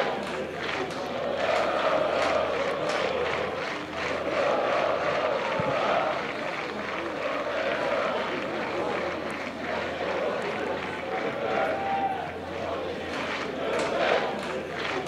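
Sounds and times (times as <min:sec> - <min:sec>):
crowd chanting: 0:00.0 - 0:15.0.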